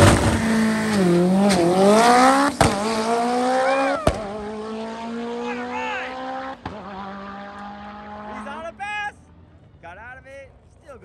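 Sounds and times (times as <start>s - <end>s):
drag racing car accelerating: 0.0s - 8.8s.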